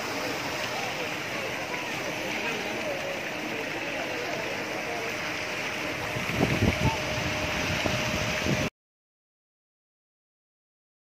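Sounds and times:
water churning and splashing: 0.0 - 8.7.

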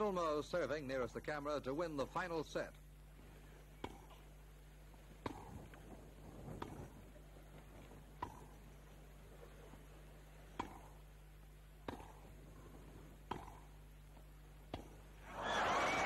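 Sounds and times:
faint steady low hum: 0.0 - 16.0
tennis ball hit by rackets: 3.8 - 4.2, 5.2 - 5.8, 6.5 - 6.9, 8.2 - 8.6, 10.5 - 11.0, 11.8 - 12.3, 13.2 - 13.7, 14.7 - 15.0.

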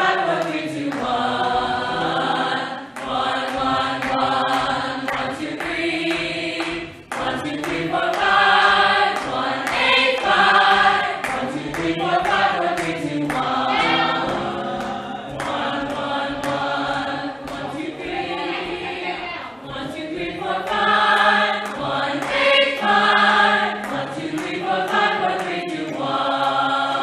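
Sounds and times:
choir singing vocal warm-ups: 0.0 - 27.0.

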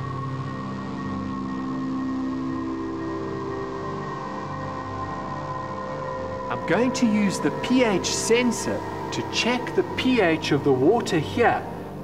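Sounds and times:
slow ambient music: 0.0 - 12.0.

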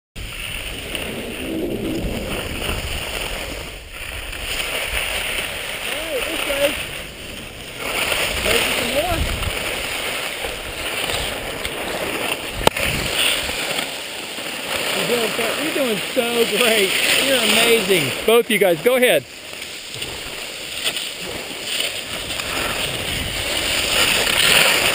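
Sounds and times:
wind rushing over microphone: 0.2 - 13.6, 20.0 - 24.9
skis scraping over snow: 0.2 - 24.9.

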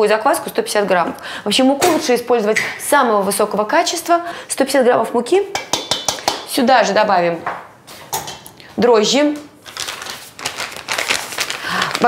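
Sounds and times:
packet crinkling and tearing: 9.6 - 12.0.

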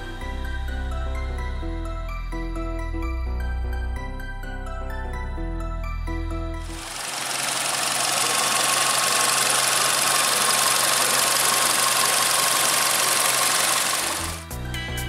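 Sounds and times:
background music: 0.0 - 7.0, 12.4 - 15.0
car engine idling: 6.6 - 14.4.

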